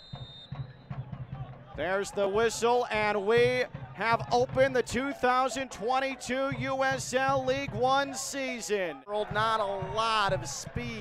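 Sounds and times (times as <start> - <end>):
referee's whistle blast: 0.0 - 1.1.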